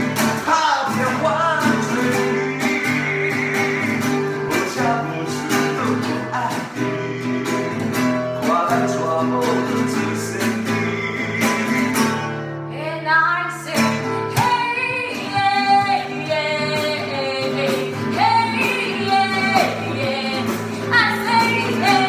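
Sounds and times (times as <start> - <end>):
strummed nylon-string guitar: 0.0 - 22.0
woman singing: 12.7 - 22.0.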